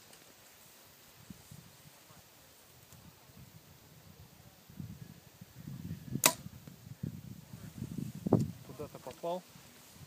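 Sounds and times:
bow string snapping: 6.2 - 6.4.

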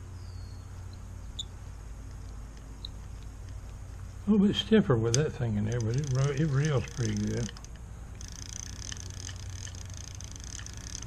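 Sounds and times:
small reel ticks: 0.8 - 4.2, 5.0 - 11.0
fishing reel gears whirring: 5.1 - 11.0.

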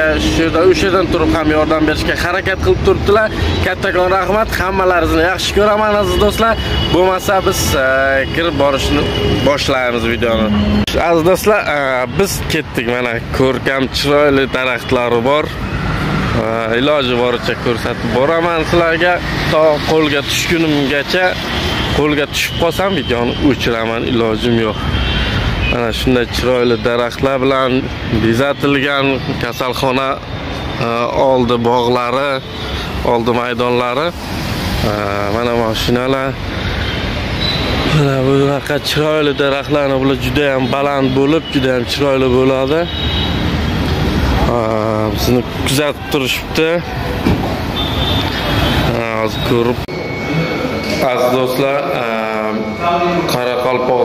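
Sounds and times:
man talking: 0.0 - 15.6, 16.3 - 24.9, 25.6 - 34.2, 34.8 - 36.4, 37.8 - 43.0, 44.4 - 47.0, 48.8 - 54.0
man's voice: 0.0 - 15.6, 16.3 - 24.8, 25.6 - 34.2, 34.8 - 36.4, 37.9 - 42.9, 44.4 - 47.0, 48.8 - 54.0
street background hum: 0.0 - 54.0.

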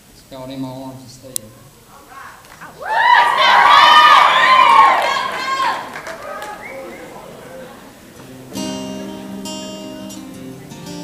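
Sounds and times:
audience cheering and shouting: 2.0 - 8.2.

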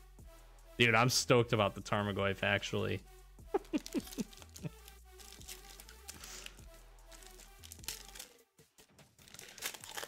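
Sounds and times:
man chuckling softly: 3.5 - 4.7.

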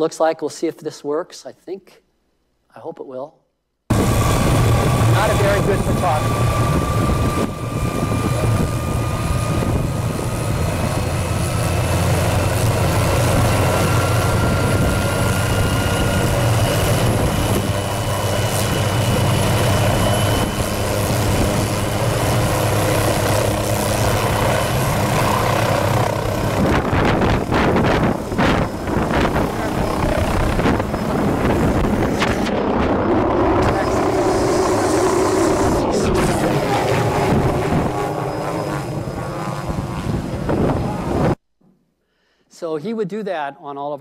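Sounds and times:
helicopter rotor beat: 3.9 - 41.4
high turbine whine: 3.9 - 41.4
rough gusty buffeting: 3.9 - 41.4.

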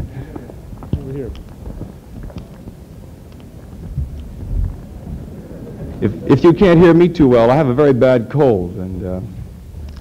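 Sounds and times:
microphone handling noise: 0.0 - 6.2.

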